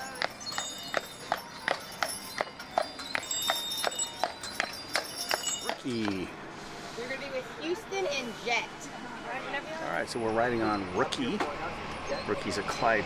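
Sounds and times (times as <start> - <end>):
hooves clip-clopping on pavement: 0.0 - 6.3
harness bells jingling: 0.0 - 6.4.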